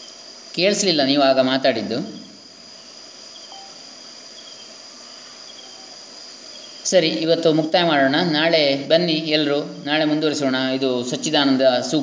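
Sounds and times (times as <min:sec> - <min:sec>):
faint background hiss: 0:00.0 - 0:12.0
person talking: 0:00.6 - 0:02.4, 0:06.8 - 0:12.0.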